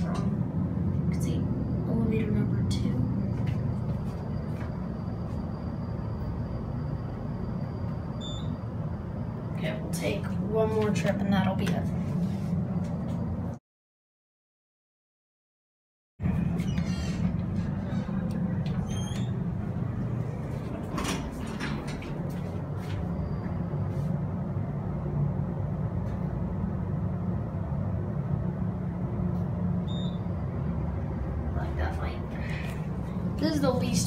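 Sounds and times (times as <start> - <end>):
elevator humming: 0.0 - 13.6, 16.2 - 34.0.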